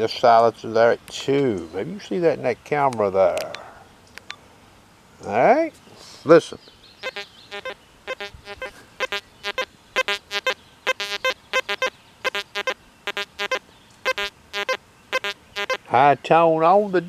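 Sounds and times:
metal detector beeps: 7.0 - 15.8.

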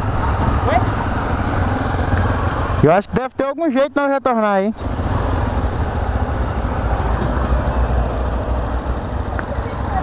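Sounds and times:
motorcycle engine running: 4.8 - 10.0.

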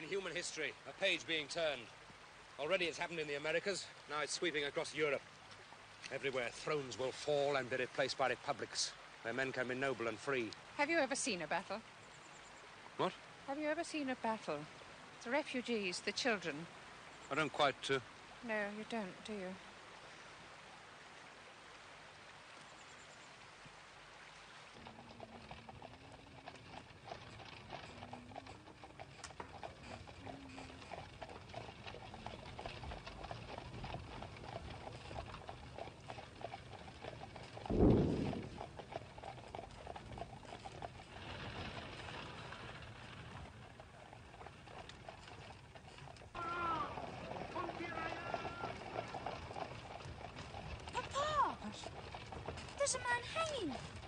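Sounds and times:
hooves clip-clopping: 0.0 - 19.8, 22.1 - 54.0
loud low thump: 37.7 - 38.5.

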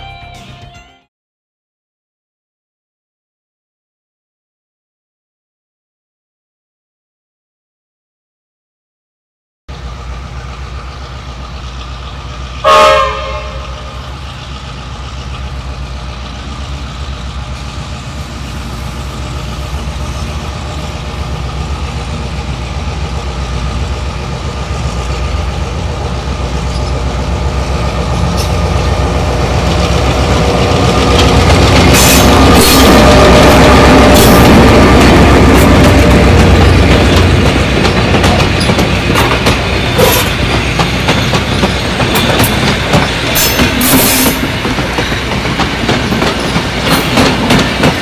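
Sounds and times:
diesel locomotive engine throbbing: 9.7 - 48.0
train horn blast: 12.6 - 14.1.

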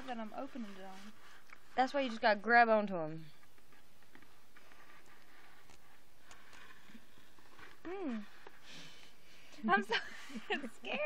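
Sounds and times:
person humming mmm: 7.8 - 8.5.

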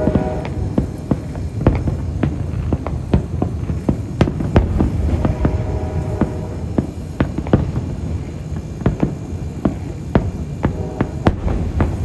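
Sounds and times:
fireworks bursting bangs: 0.0 - 12.0
low rumble of booms: 0.0 - 12.0.

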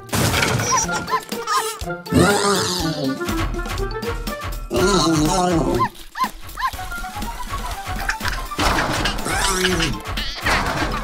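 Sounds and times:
background music: 0.0 - 11.0
cartoon puppy yapping: 5.6 - 6.8.

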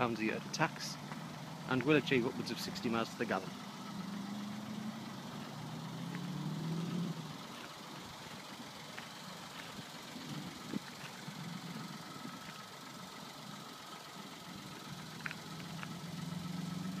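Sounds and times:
car engine humming: 0.0 - 17.0.

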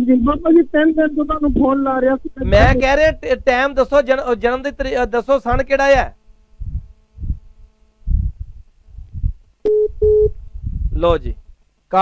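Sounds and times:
muffled low thumps: 0.0 - 11.6
phone call audio: 9.6 - 10.4
short telephone beeps: 9.6 - 10.4.

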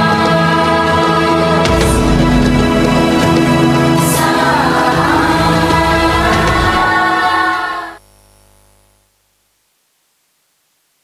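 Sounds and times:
choir singing held chord: 0.0 - 8.0.

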